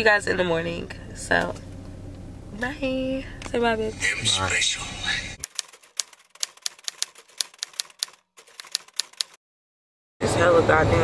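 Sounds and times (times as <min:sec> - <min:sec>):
rapid light sharp clicks: 0:05.4 - 0:09.4.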